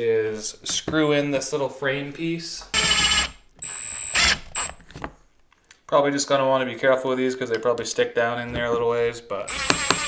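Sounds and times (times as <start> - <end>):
powered screwdriver whirring: 2.8 - 4.8, 9.5 - 10.0.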